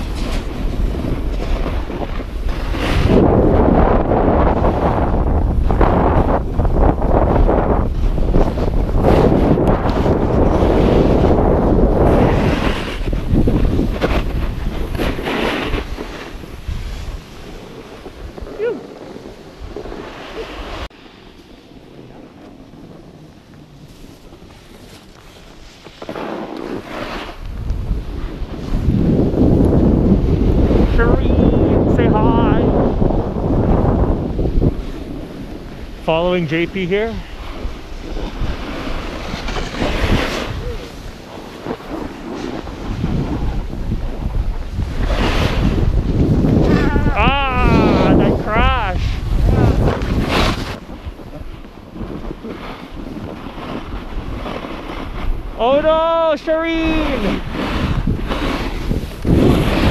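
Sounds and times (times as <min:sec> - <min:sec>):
snowboard scraping packed snow: 0:00.0 - 0:59.9
wind rushing over microphone: 0:00.0 - 0:59.9.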